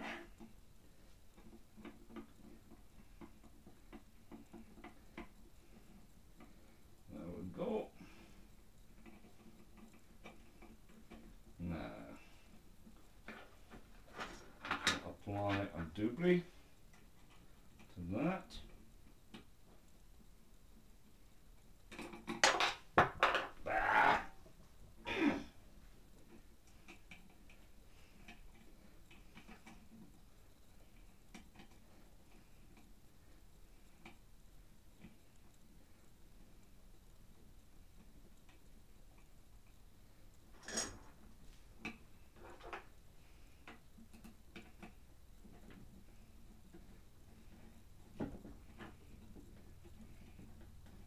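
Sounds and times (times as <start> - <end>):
small parts clicking and tapping: 0.0 - 7.1, 7.9 - 16.0, 16.6 - 24.6, 25.8 - 51.0.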